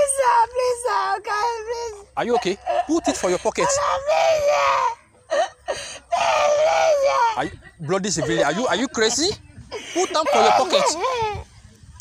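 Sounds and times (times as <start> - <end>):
boy crying: 2.7 - 7.6, 10.0 - 11.4
boy wailing: 3.6 - 5.4, 6.1 - 7.5, 10.2 - 11.4.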